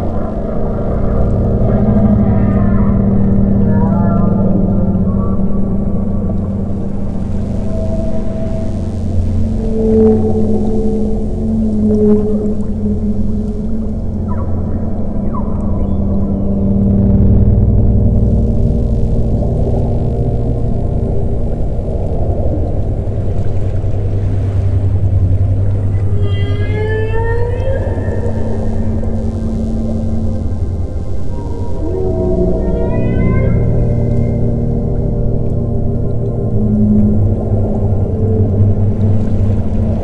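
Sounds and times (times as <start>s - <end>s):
ambient drone music: 0.0s - 40.0s
whale calls: 0.0s - 40.0s.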